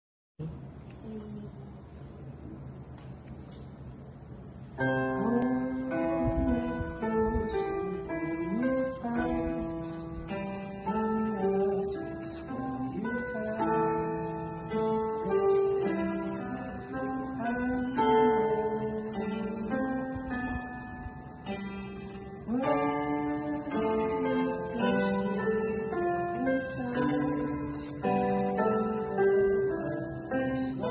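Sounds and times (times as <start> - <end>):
electronic keyboard music: 4.8 - 30.9.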